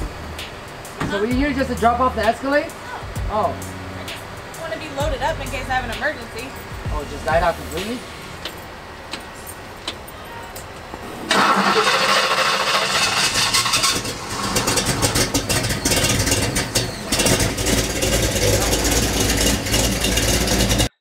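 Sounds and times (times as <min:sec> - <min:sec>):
pickup truck engine starting and running: 0:00.0 - 0:21.0.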